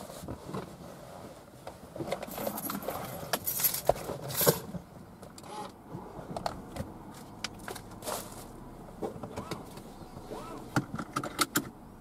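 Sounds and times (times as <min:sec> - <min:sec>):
dashboard controls clicking: 0:09.2 - 0:11.8.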